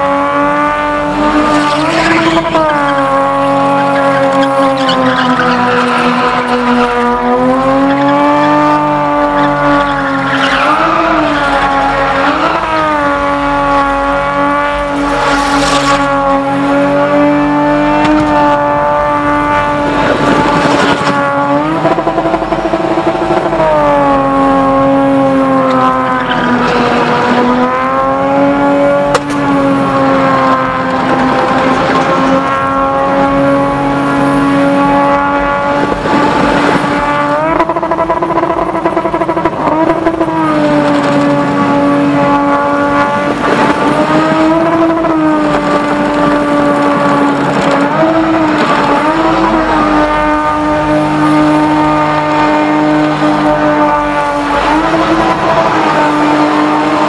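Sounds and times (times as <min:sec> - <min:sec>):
car engine at high revs: 0:00.0 - 0:57.0
tyres spinning and squealing: 0:01.1 - 0:16.1, 0:25.7 - 0:28.0.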